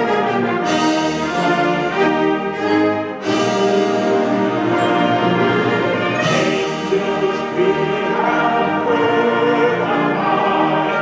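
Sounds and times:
choir singing held chords: 0.0s - 11.0s
wind band playing: 0.0s - 11.0s.

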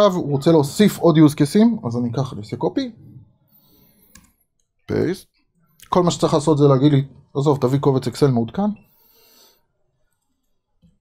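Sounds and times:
man speaking: 0.0s - 3.3s, 4.9s - 8.9s.

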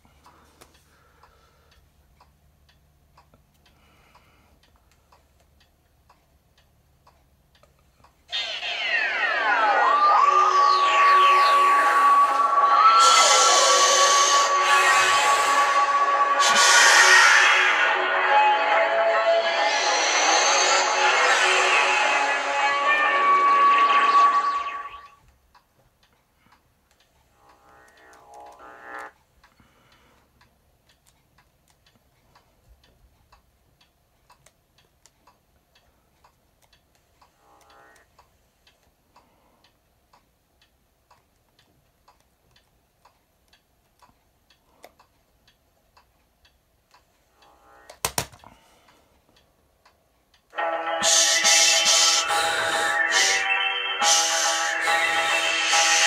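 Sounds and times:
menu music from tv: 8.3s - 25.2s, 27.4s - 29.1s, 50.5s - 56.0s.

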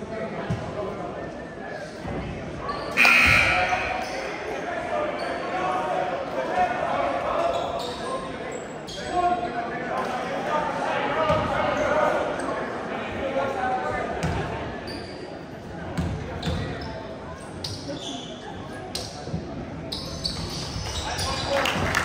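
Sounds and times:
echoing crowd chatter: 0.0s - 22.0s.

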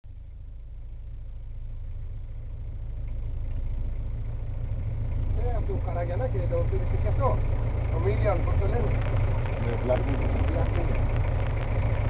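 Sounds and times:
boat engine idling: 0.1s - 12.0s.

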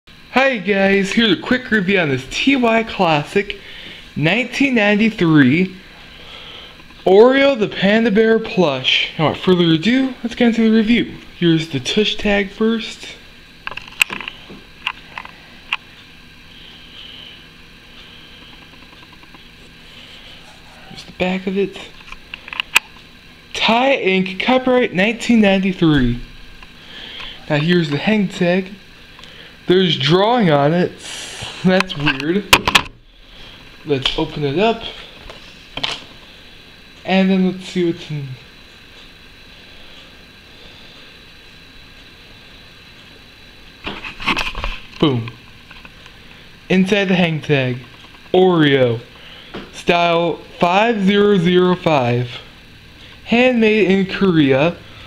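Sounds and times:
faint steady hiss: 0.1s - 55.0s.

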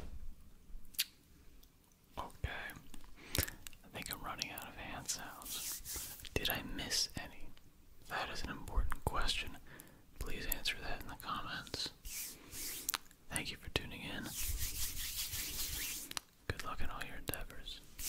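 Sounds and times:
close whispering: 2.2s - 2.8s, 3.8s - 5.5s, 6.3s - 9.6s, 10.2s - 12.0s, 13.3s - 14.4s, 16.5s - 17.9s.

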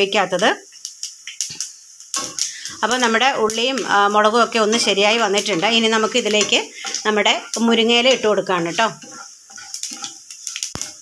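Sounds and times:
woman talking: 0.0s - 0.6s, 2.7s - 9.0s
wooden spatula scraping pan: 4.5s - 11.0s.

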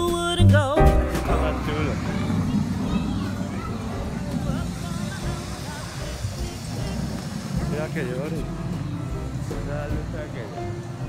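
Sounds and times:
music over loudspeakers: 0.0s - 2.4s
low microphone rumble: 0.5s - 11.0s
voices of people: 1.0s - 11.0s.

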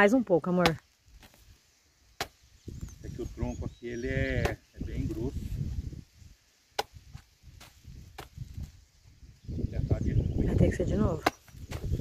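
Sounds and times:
machete chopping trunk: 2.2s - 2.4s, 6.7s - 8.4s, 11.1s - 12.0s.

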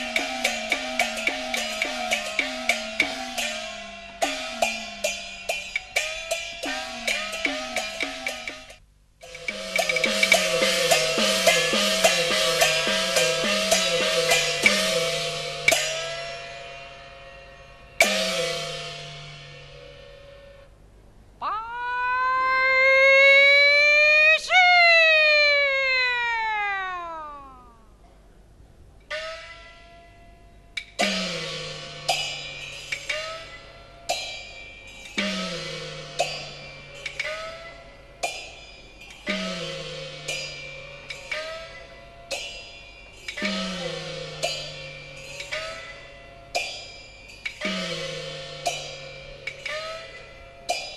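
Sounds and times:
gongs ringing with bending pitch: 0.0s - 20.7s, 29.1s - 50.9s
cymbals crashing: 0.0s - 20.8s, 29.1s - 50.9s.

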